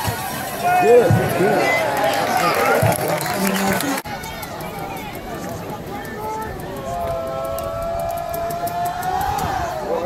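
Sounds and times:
outdoor crowd noise: 0.0s - 10.0s.

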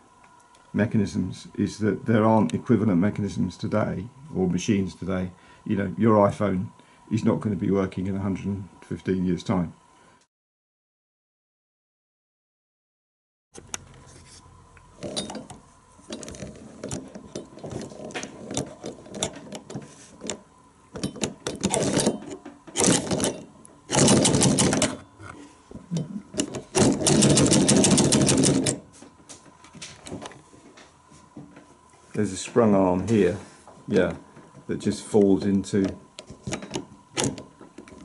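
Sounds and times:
projector mechanism clattering: 21.0s - 25.1s, 26.4s - 28.8s.

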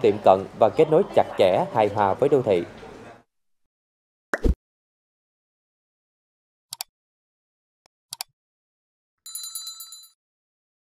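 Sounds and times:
bright bell ring: 9.3s - 10.2s.

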